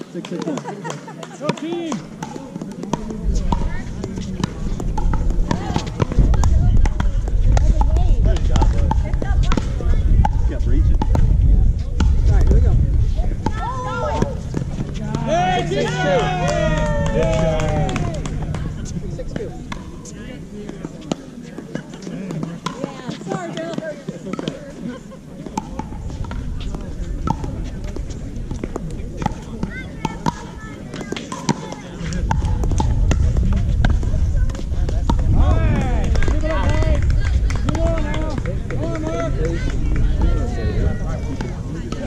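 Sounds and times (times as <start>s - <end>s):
low rumble: 3.2s - 21.0s, 32.0s - 41.8s
paddles hitting plastic ball: 13.4s - 24.7s.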